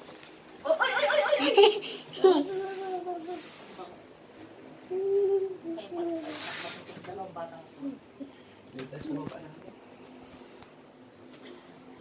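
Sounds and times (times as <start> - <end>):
child humming: 2.2 - 3.4, 4.9 - 6.4.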